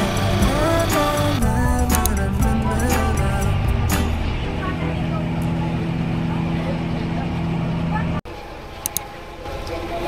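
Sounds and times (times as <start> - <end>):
ferry engine drone: 0.0 - 10.0.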